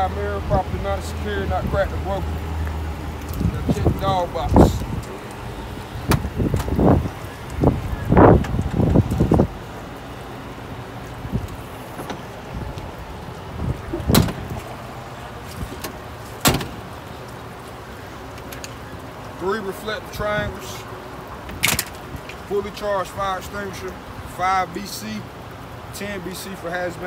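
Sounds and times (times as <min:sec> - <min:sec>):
muffled bumps: 0:06.0 - 0:09.6.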